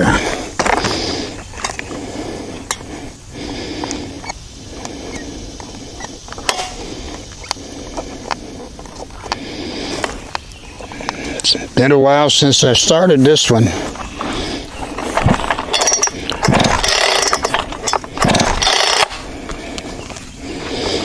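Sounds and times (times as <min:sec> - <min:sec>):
rustling: 0:13.1 - 0:21.0.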